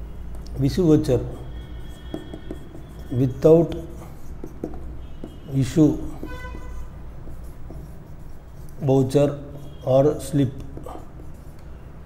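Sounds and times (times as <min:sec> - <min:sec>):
marker writing on whiteboard: 0:00.0 - 0:12.0
man speaking: 0:00.6 - 0:01.5, 0:03.1 - 0:04.0, 0:05.5 - 0:06.4, 0:08.8 - 0:11.0.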